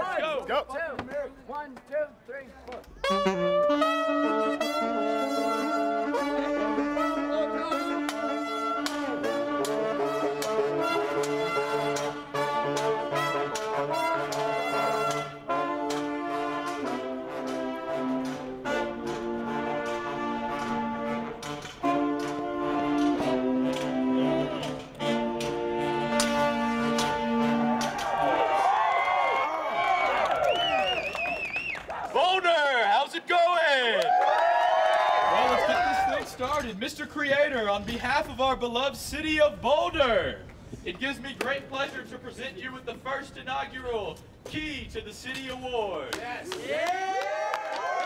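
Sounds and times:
street brass band playing: 3.0 - 29.0.

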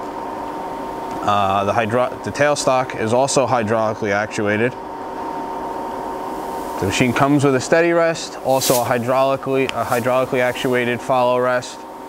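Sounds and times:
lathe humming: 4.8 - 12.0.

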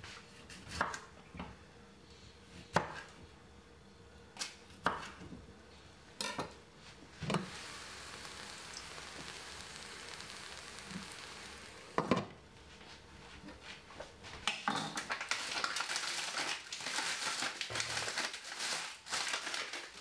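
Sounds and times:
vegetables sizzling: 7.1 - 12.2.

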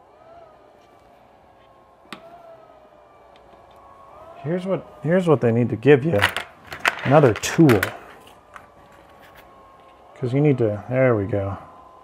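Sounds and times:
fan whine: 0.0 - 12.0.

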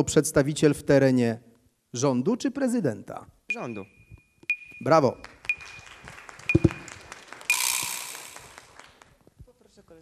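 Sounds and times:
audience applauding: 5.2 - 9.2
short high ping: 7.5 - 8.4.

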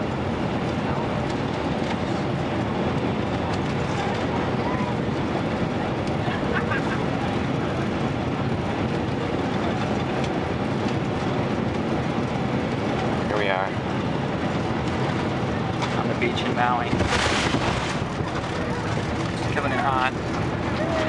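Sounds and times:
jet airliner cabin noise: 0.0 - 21.0.

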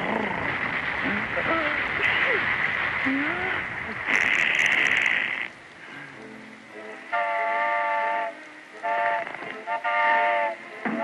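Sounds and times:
hiss: 0.0 - 11.0
soft music: 5.6 - 11.0.

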